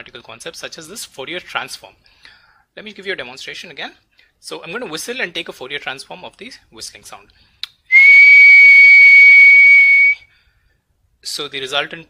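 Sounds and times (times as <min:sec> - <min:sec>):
person whistling high note: 0:07.9 - 0:10.3.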